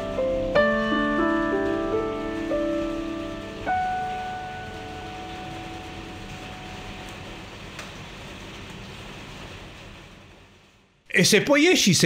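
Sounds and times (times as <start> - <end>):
piano note ringing: 0.0 - 7.8
rain hiss: 0.0 - 12.0.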